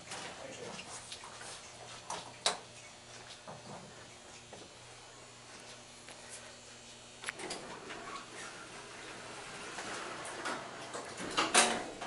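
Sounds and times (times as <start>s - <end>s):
elevator doors sliding closed: 7.4s - 12.0s
elevator doors thumping shut: 10.0s - 12.0s.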